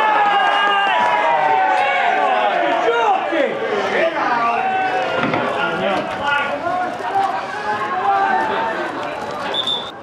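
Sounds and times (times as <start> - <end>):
men shouting and calling: 0.0 - 8.8
spectators talking: 0.0 - 10.0.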